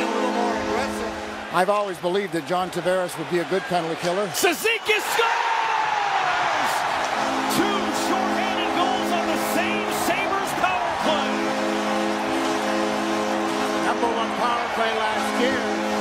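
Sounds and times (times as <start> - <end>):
sustained chord over loudspeakers: 0.0 - 1.4, 7.2 - 16.0
crowd cheering and whistling: 0.0 - 16.0.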